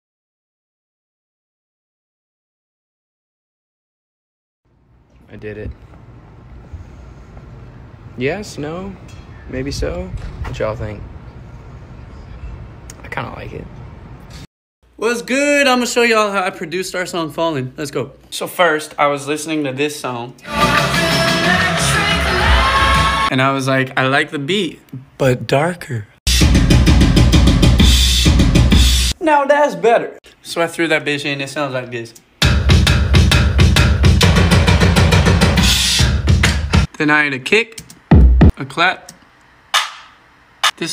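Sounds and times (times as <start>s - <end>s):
dark music beat: 26.3s - 29.2s, 32.4s - 36.9s.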